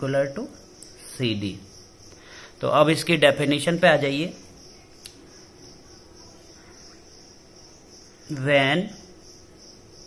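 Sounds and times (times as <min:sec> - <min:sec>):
cricket chirring: 0:00.0 - 0:10.0.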